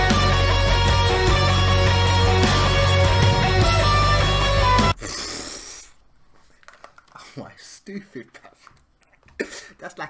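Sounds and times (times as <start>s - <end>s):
rock band with electric guitar: 0.0s - 5.0s.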